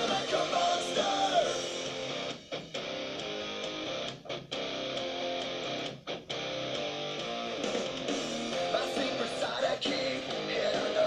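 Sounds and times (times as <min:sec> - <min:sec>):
person singing: 0:00.0 - 0:01.9, 0:08.6 - 0:11.0
strummed electric guitar: 0:00.0 - 0:11.0.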